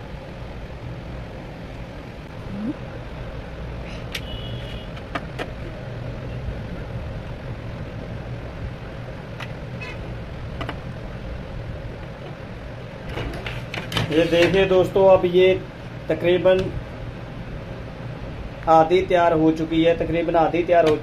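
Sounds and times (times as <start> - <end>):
steady low rumble: 0.0 - 3.8.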